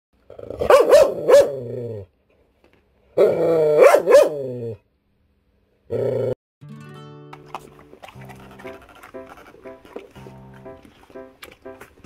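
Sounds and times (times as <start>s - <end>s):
dog growl-barking: 0.3s - 2.1s, 3.2s - 4.8s, 5.9s - 6.4s.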